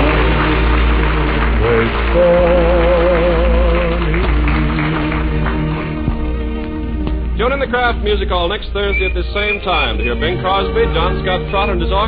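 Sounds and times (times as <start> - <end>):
low recording hum: 0.0 - 12.0
orchestra playing held chords: 0.0 - 12.0.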